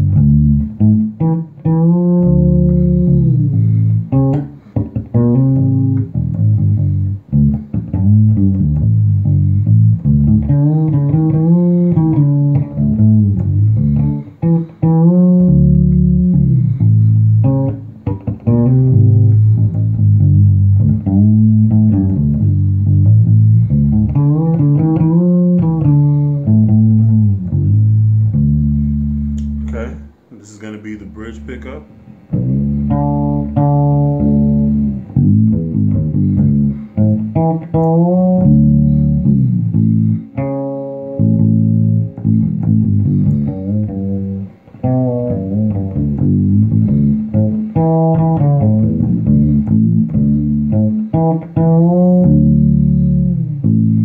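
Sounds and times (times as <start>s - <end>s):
fretless electric bass sliding: 0.0s - 30.3s, 30.9s - 54.0s.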